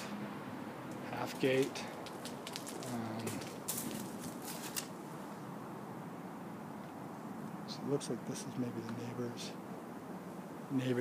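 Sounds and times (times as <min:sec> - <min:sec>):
faint background hiss: 0:00.0 - 0:11.0
rustling clicks: 0:01.9 - 0:05.0.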